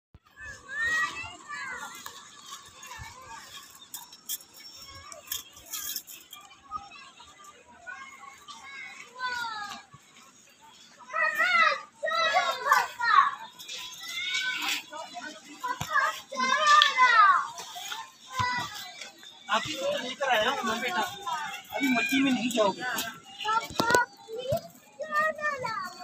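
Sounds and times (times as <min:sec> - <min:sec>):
children shouting and squealing: 0:00.2 - 0:26.0.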